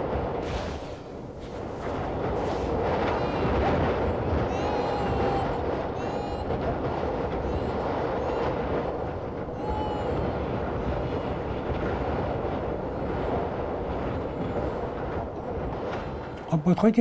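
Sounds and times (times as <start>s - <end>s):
strong wind blowing: 0.0s - 17.0s.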